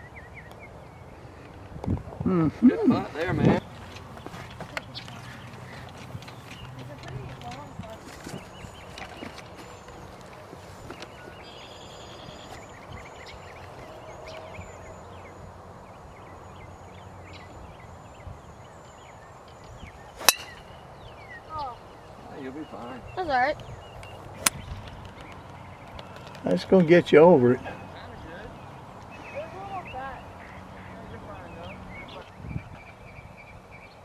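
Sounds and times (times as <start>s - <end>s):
low outdoor background noise: 0.0s - 34.0s
golf driver striking ball: 20.2s - 20.6s.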